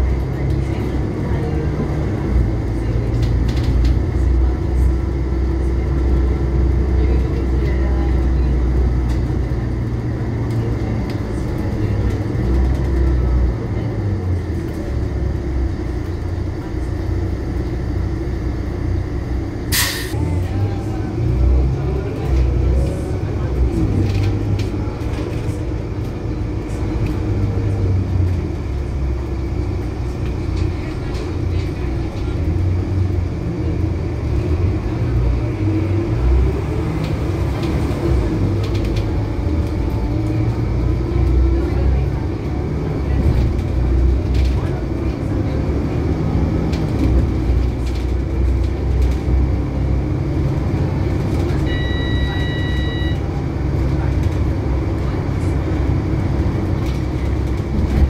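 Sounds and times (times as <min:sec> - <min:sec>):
bus diesel engine rumble: 0:00.0 - 0:58.0.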